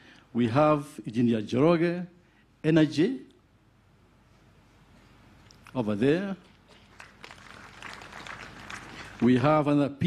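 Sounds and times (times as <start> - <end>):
audience applause: 6.7 - 9.4.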